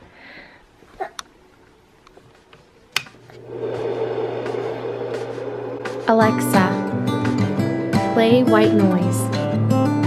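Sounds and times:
white noise machine rushing: 3.3 - 8.6.

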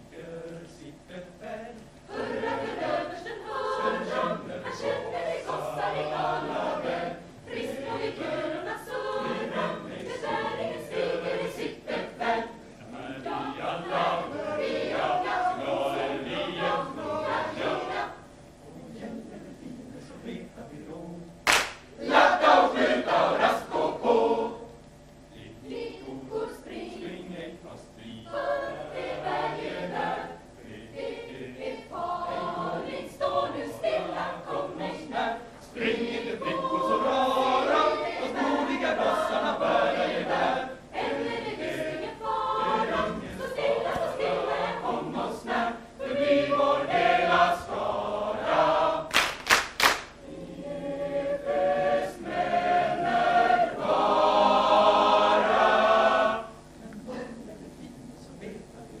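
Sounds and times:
choir singing a cappella: 0.0 - 21.1, 21.9 - 49.4, 50.2 - 56.9.

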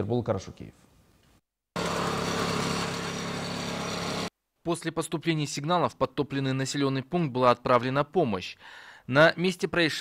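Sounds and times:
small engine running: 1.8 - 4.3.

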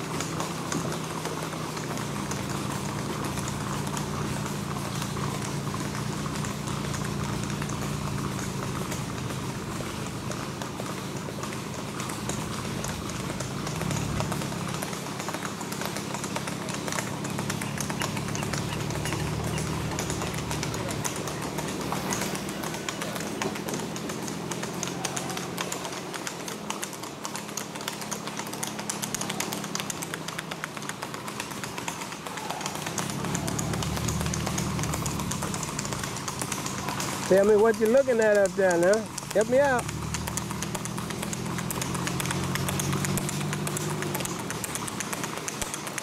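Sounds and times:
horse hooves on asphalt: 0.0 - 46.0.

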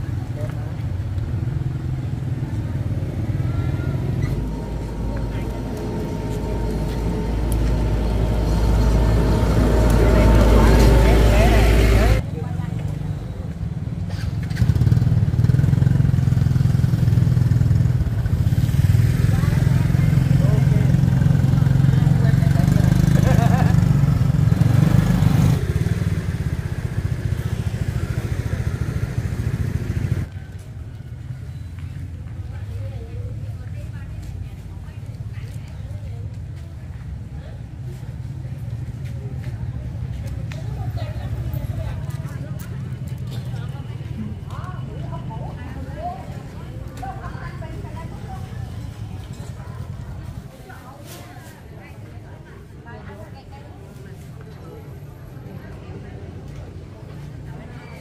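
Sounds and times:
people talking: 0.0 - 14.2, 18.1 - 28.9, 31.8 - 58.0
motorbike engines running: 0.0 - 58.0.

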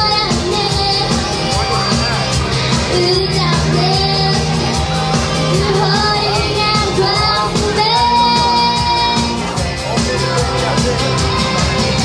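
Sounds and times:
girl singing into microphone: 0.0 - 1.6, 2.8 - 9.6
bass guitar: 0.0 - 12.0
drums keeping steady beat: 0.0 - 12.0
electric guitars: 0.0 - 12.0.

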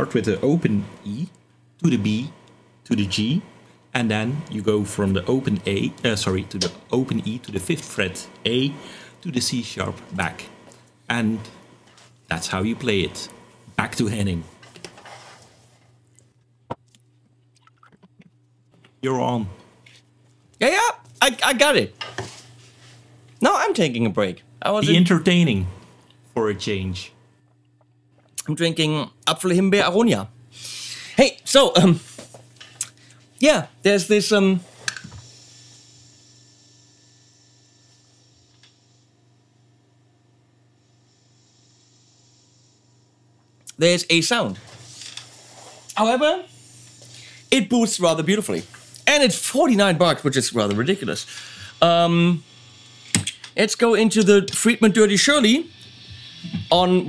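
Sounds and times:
guitar amp hum and hiss: 0.0 - 16.0, 18.8 - 27.3, 28.4 - 57.0.

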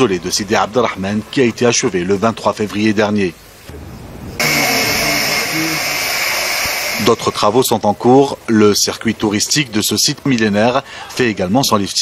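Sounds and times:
power tool whining: 4.4 - 7.5.

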